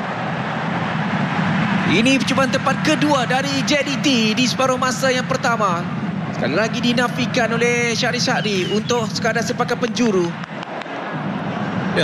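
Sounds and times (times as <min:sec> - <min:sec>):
stadium crowd ambience: 0:00.0 - 0:12.0.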